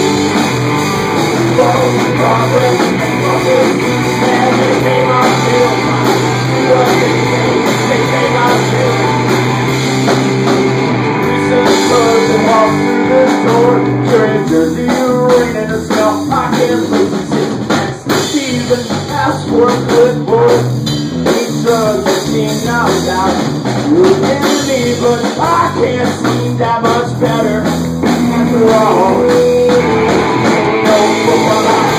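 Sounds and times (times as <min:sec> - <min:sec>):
drum kit: 0:00.0 - 0:31.9
electric guitars: 0:00.0 - 0:31.9
man singing into a microphone: 0:01.4 - 0:09.2, 0:11.2 - 0:30.1, 0:30.7 - 0:31.9.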